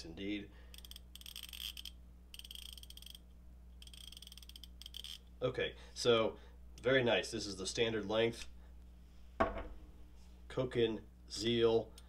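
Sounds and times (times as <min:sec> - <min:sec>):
ratchet clicking: 0:00.7 - 0:03.2, 0:03.8 - 0:05.2.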